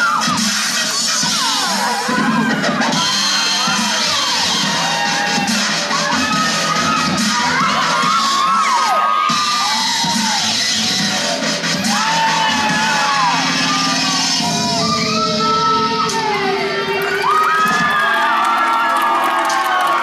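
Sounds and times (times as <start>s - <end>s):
dubstep music: 0.0s - 18.5s
audience cheering and screaming: 0.0s - 20.0s.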